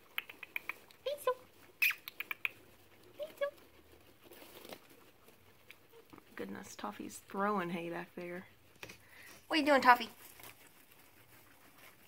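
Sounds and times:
guinea pig chewing hay: 0.0 - 12.0.

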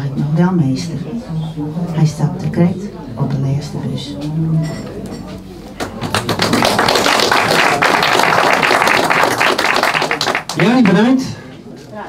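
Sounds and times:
audience applauding: 5.8 - 11.2.

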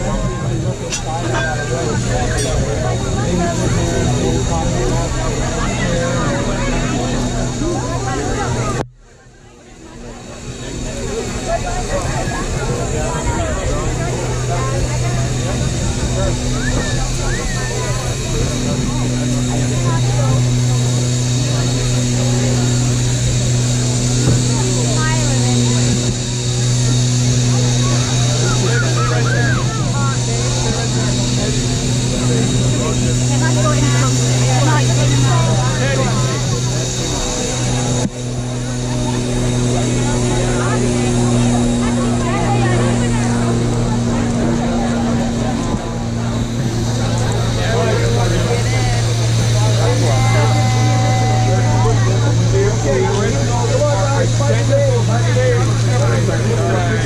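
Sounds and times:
crowd talking: 0.0 - 57.0
steady low hum: 0.0 - 57.0.

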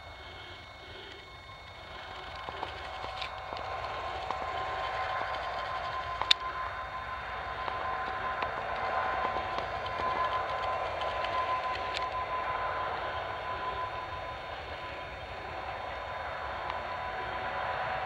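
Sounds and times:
diesel locomotive passing: 2.0 - 18.0.

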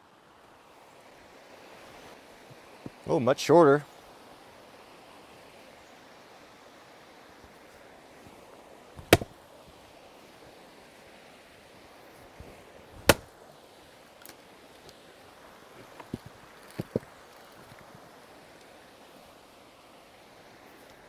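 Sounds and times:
wood cracking open: 9.0 - 9.3, 13.0 - 13.3, 16.0 - 17.1
maul striking wood: 9.0 - 9.4, 13.0 - 13.3.

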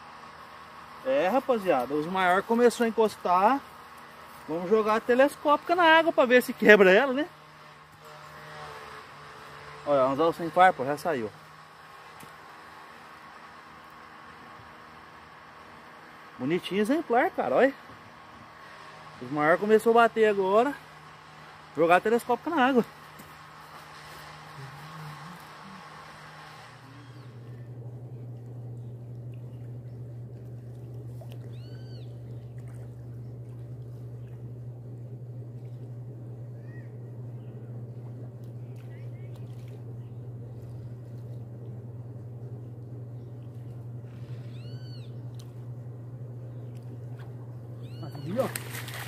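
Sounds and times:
steady low hum: 0.0 - 49.0
animal calls rising and falling: 24.5 - 27.6, 31.4 - 32.2, 44.3 - 45.2, 47.8 - 49.0.

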